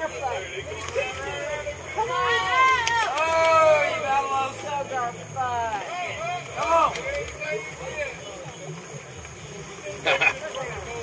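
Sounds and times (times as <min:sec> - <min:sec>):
faint indistinct voices: 0:00.0 - 0:11.0.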